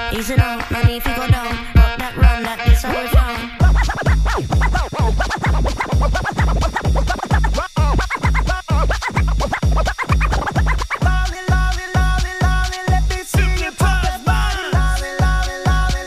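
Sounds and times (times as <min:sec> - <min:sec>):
hip-hop beat with heavy bass: 0:00.0 - 0:16.0
record scratching: 0:00.0 - 0:16.0.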